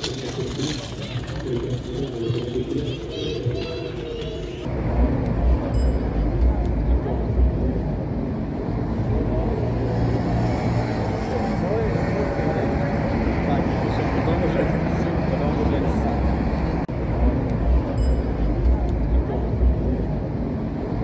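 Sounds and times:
low rumble of road traffic: 0.0 - 21.0.

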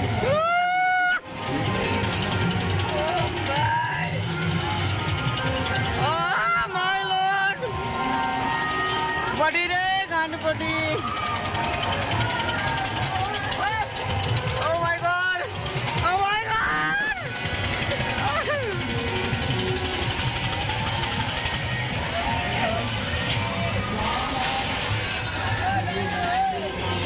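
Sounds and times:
crowd noise: 0.0 - 27.0.

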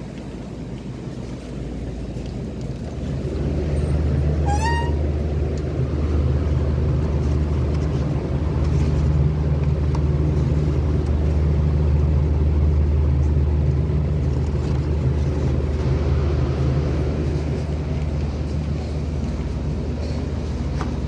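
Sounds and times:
refrigeration hum: 0.0 - 21.0
short rising squeak: 4.4 - 5.0.

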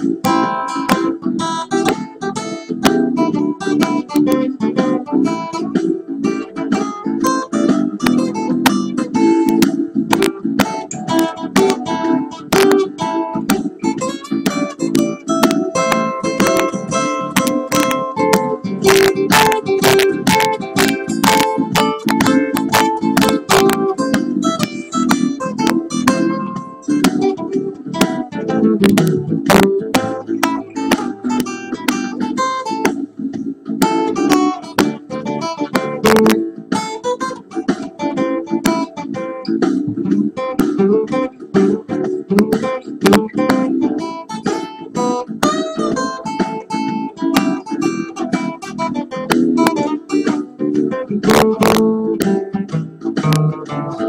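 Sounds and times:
blues acoustic guitar: 0.0 - 54.0.

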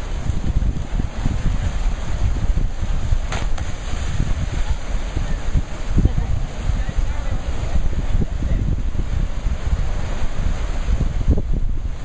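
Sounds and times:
surf against rock: 0.0 - 8.7
wind buffeting microphone: 0.0 - 12.0.

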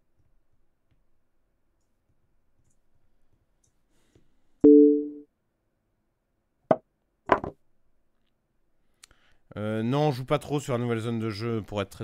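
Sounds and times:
two-note tone: 4.7 - 5.2.

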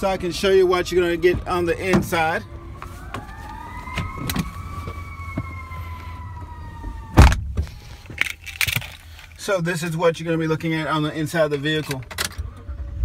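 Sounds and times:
truck door shutting: 7.1 - 8.3.

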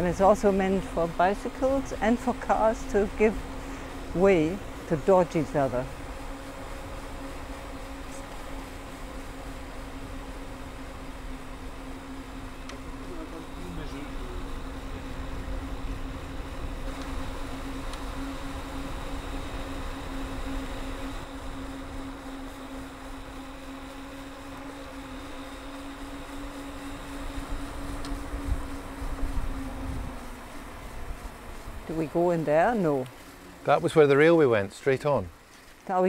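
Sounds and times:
electric bike motor humming: 0.0 - 36.0
tyres on tarmac: 0.0 - 36.0.

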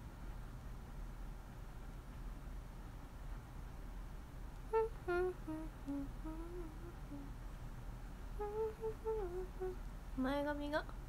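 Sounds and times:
woman humming: 4.7 - 7.4, 8.4 - 9.8.

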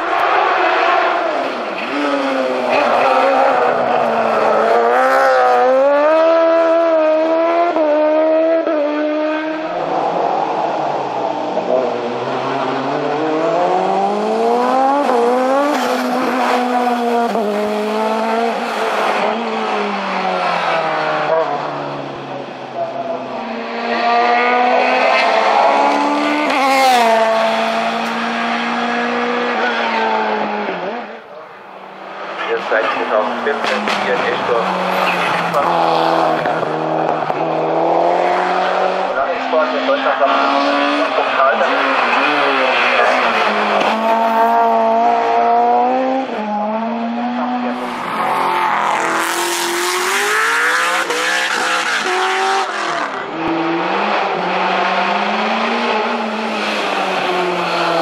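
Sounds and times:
race car engines at full throttle: 0.0 - 58.0.

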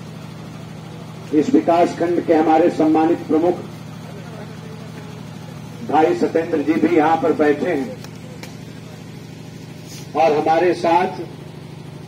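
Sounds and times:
man speaking: 5.8 - 8.0, 10.1 - 11.4.

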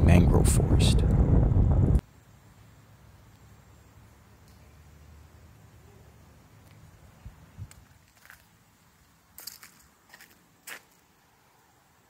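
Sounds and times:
faint footsteps on walkway: 6.6 - 11.2.

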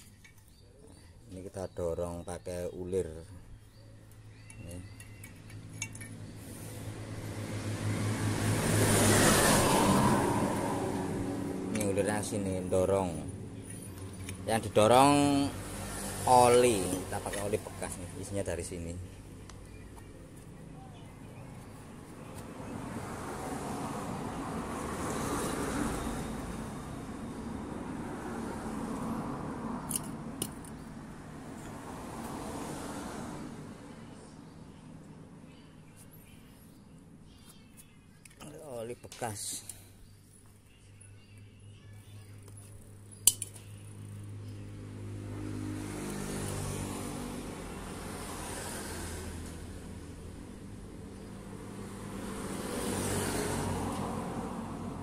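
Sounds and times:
road vehicle passing: 2.8 - 37.2, 42.3 - 55.0.

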